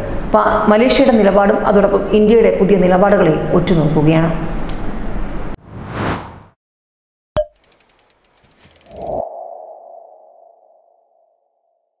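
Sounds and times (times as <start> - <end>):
rising low whoosh: 5.5 - 6.6
rapid clicking ticks: 7.5 - 9.2.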